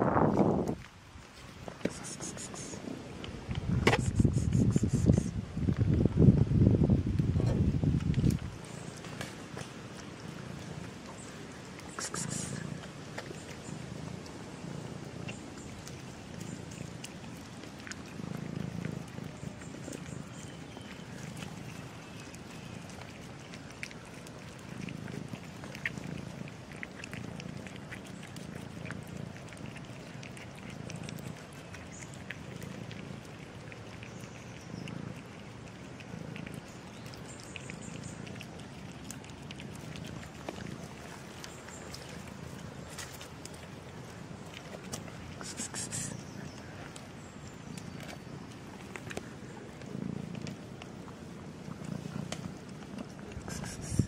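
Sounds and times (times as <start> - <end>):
kitten purring: 0.0 - 0.8, 3.6 - 54.0
cats chewing wet food: 0.0 - 54.0.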